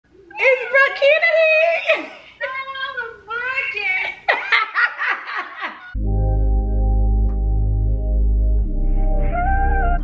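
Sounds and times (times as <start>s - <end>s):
woman laughing: 0.4s - 2.7s, 3.8s - 6.0s
music: 6.0s - 10.0s.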